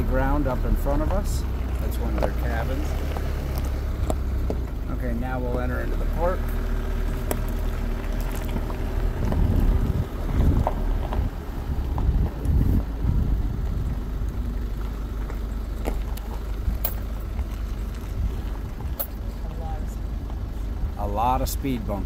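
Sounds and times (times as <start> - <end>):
vehicle rumbling on gravel: 0.0 - 22.0.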